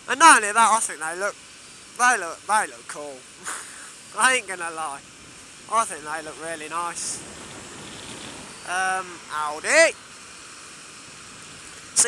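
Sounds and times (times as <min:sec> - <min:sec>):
rushing wind and road noise: 0:03.2 - 0:12.0.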